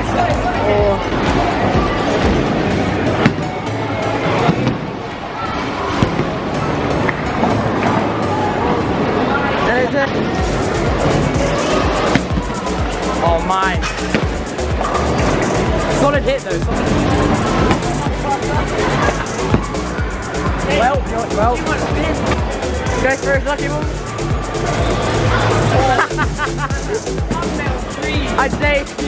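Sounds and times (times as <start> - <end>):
voices: 0.0 - 29.0
background music: 10.4 - 29.0
bowling balls rolling: 16.7 - 20.6.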